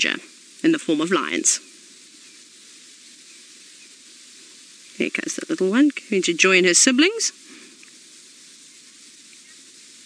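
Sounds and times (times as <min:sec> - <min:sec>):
faint high chirps: 0:00.0 - 0:10.0
outdoor bush ambience hiss: 0:00.0 - 0:10.0.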